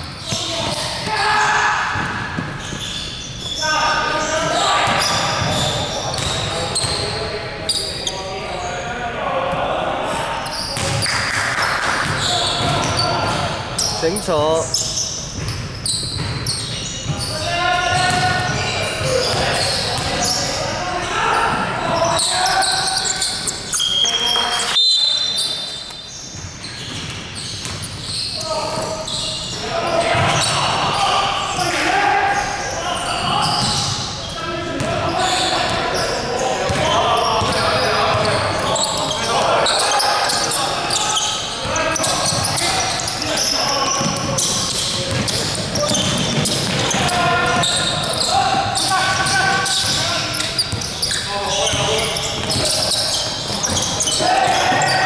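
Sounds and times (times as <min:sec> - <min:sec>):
players shouting: 0:00.3 - 0:02.4, 0:28.4 - 0:55.0
basketball bouncing on wood floor: 0:17.9 - 0:18.6, 0:45.1 - 0:47.2.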